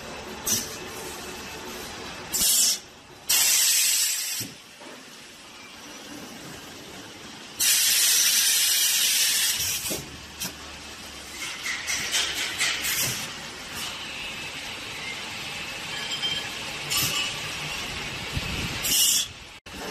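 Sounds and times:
bursts of air hiss: 0.4 - 1.2, 2.3 - 4.6, 7.6 - 10.6, 12.6 - 14.0, 18.3 - 19.5.

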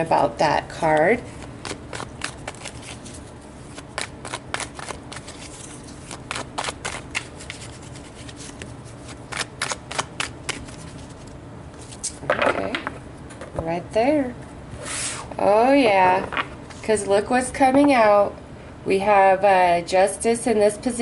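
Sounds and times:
cards being shuffled: 1.3 - 12.9.

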